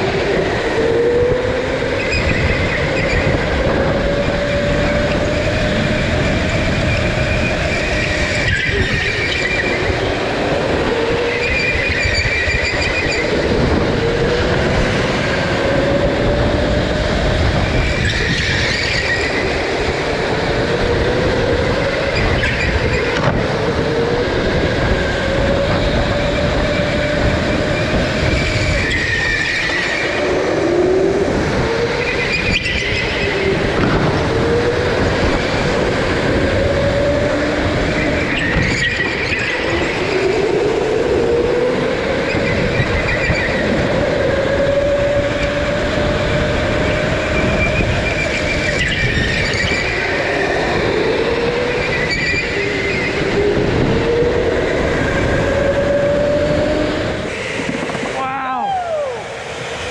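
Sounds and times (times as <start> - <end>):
go-kart motor whining: 0.0 - 59.9
rumbling road and tyre noise: 0.0 - 59.9.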